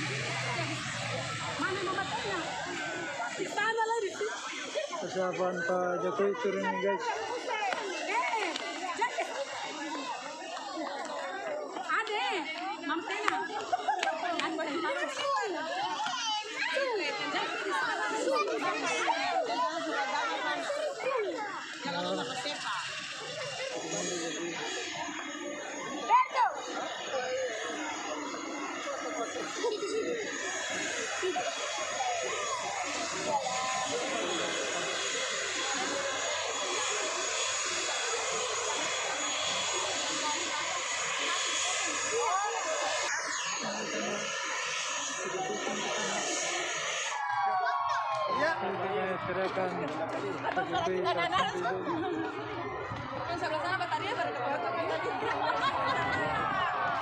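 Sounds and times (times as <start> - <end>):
crowd chattering: 0.0 - 57.0
turboprop engines whining: 0.0 - 57.0.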